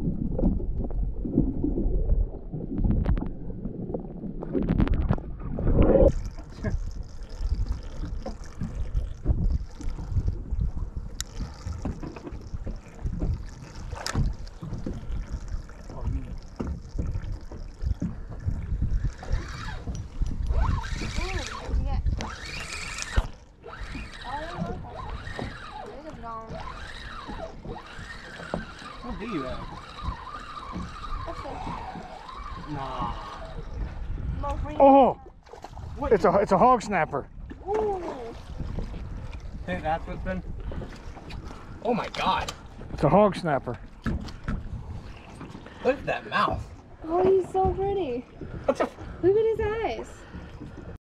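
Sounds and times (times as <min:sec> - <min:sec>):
muffled underwater rumble: 0:00.0 - 0:27.9, 0:28.5 - 0:51.0
water lapping at hull: 0:00.0 - 0:51.0
wind on microphone: 0:00.0 - 0:51.0.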